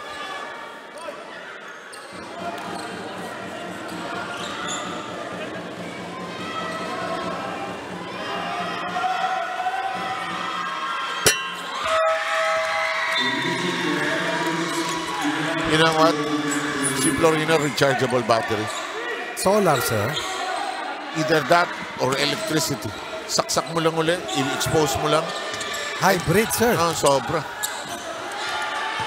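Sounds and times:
crowd voices chattering: 0.0 - 29.0
fans cheering: 0.0 - 29.0.

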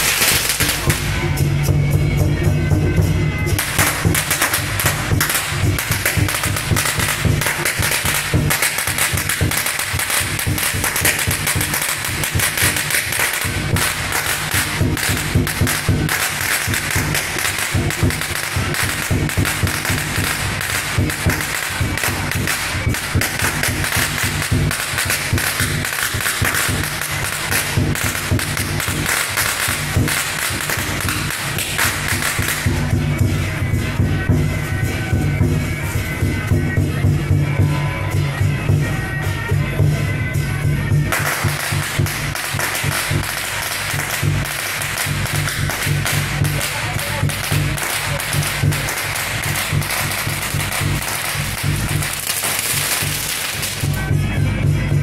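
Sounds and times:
firecrackers crackling: 0.0 - 55.0.

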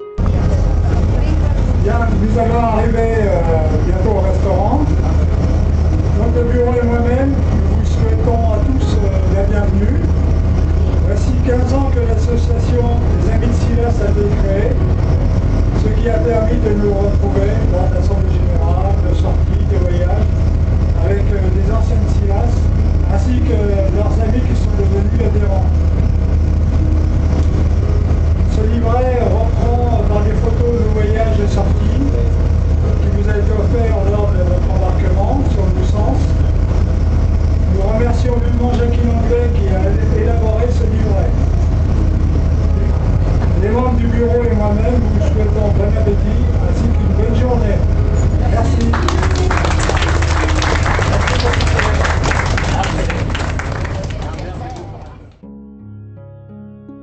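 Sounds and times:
boat engine hum: 0.0 - 55.4
man speaking over loudspeaker: 1.1 - 26.0, 28.4 - 36.6, 37.6 - 41.7, 43.5 - 55.2.

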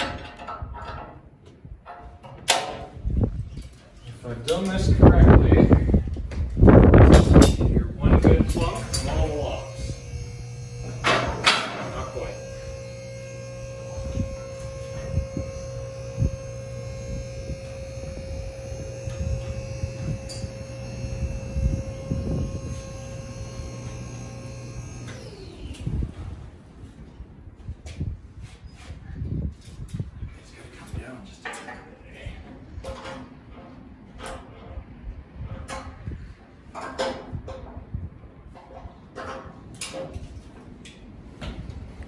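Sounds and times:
electric motor and hydraulic pump: 6.9 - 26.5
lift clunk: 8.5 - 13.8.

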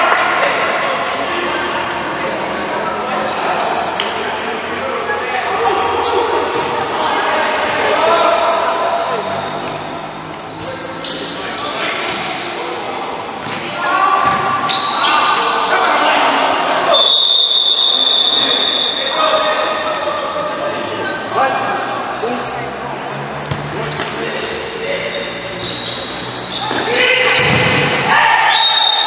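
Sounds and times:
players shouting: 0.0 - 29.0
referee's whistle blast: 28.4 - 29.0.

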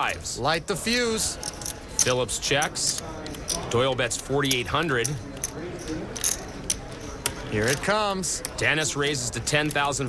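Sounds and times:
faint room murmur: 0.0 - 10.0
poker chips clicking: 1.4 - 10.0.

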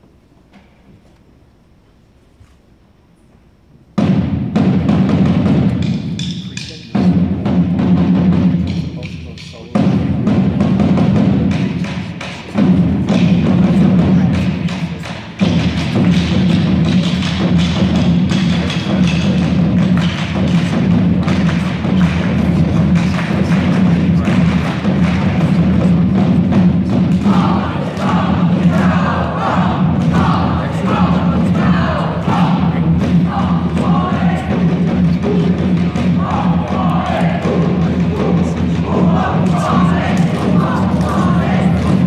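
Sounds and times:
drum hits: 3.9 - 42.0.

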